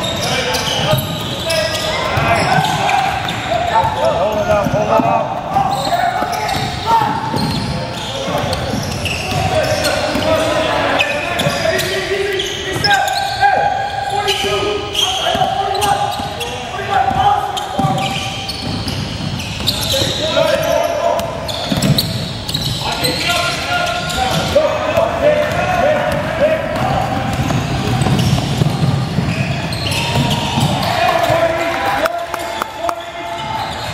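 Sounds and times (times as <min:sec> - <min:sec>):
players calling out in a gym: 0:00.0 - 0:33.9.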